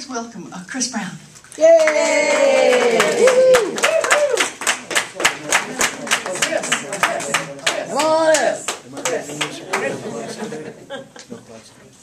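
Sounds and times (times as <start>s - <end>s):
audience clapping: 1.6s - 10.0s.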